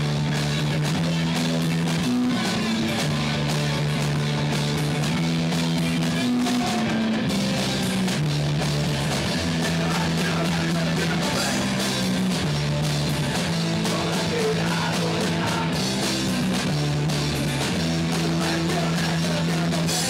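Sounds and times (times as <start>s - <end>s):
drum kit with cymbals: 0.0s - 20.0s
electric guitar and bass riffing: 0.0s - 20.0s.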